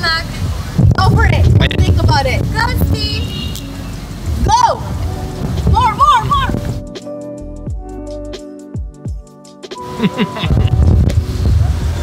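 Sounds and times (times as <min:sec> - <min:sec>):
steady rain: 0:00.0 - 0:06.8, 0:09.8 - 0:12.0
background music: 0:00.8 - 0:12.0.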